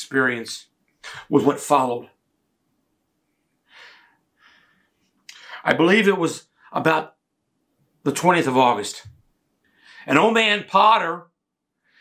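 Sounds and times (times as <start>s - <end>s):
man speaking: 0.0s - 2.2s, 5.3s - 7.2s, 8.0s - 9.2s, 10.0s - 11.4s
man's intake of breath: 3.6s - 5.6s.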